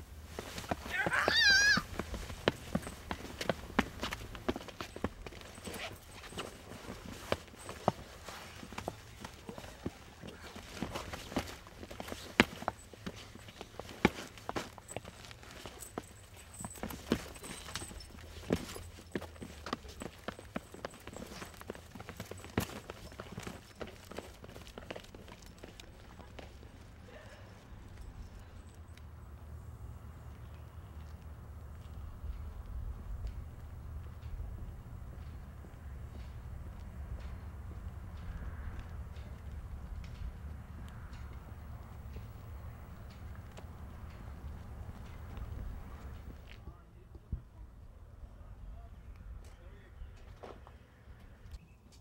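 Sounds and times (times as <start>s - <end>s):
quick steps on pavement: 0.1s - 27.0s, 30.1s - 46.6s
shoes scuffing on concrete: 0.3s - 25.8s
woman's high-pitched squeal: 0.9s - 1.9s.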